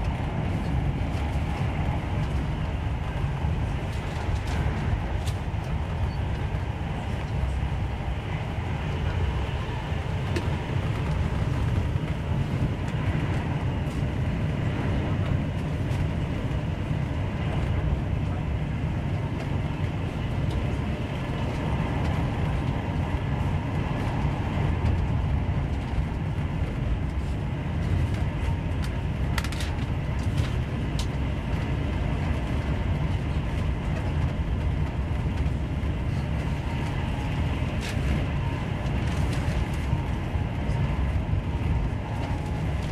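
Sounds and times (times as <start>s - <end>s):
train running at speed: 0.0s - 42.9s.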